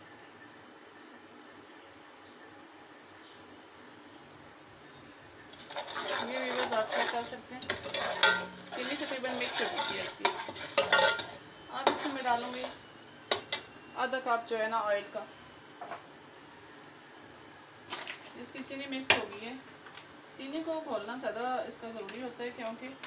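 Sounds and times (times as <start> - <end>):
metal spoon scraping a pot: 5.5 - 13.7
spoon clinking against pot: 6.5 - 13.7.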